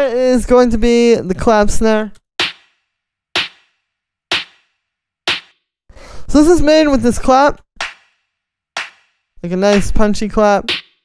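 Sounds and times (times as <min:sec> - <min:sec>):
clap-snare hits with reverb: 0:02.4 - 0:02.8, 0:03.4 - 0:05.6, 0:07.8 - 0:10.0, 0:10.7 - 0:11.0.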